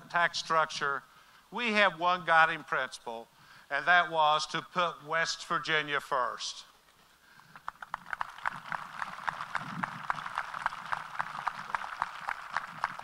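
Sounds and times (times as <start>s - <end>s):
crowd applauding: 7.5s - 13.0s.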